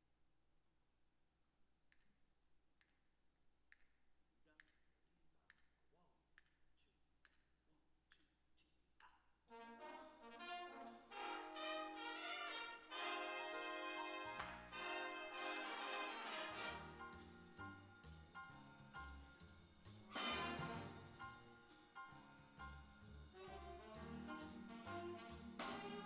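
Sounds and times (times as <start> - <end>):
jazz big band playing: 9.5 - 26.0.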